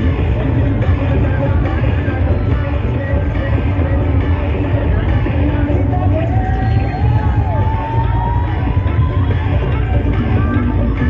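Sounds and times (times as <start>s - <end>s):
bass-heavy music over speakers: 0.0s - 11.0s.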